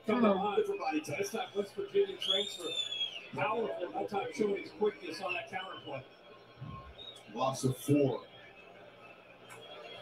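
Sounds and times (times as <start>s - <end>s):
broadcast commentary: 0.0s - 10.0s.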